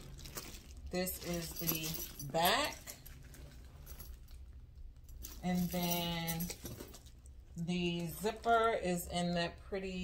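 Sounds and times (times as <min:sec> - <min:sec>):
handbag handling taps and rustles: 0:00.0 - 0:04.4, 0:05.0 - 0:08.6.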